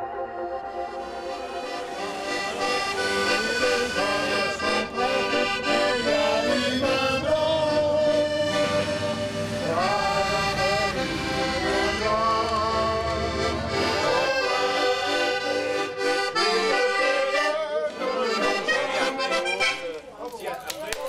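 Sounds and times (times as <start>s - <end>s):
accordion melody: 0.0s - 20.2s.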